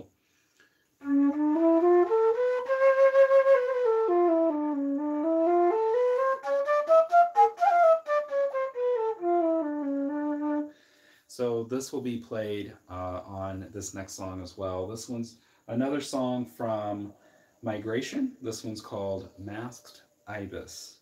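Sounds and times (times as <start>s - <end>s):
bamboo flute playing scale: 1.0s - 10.8s.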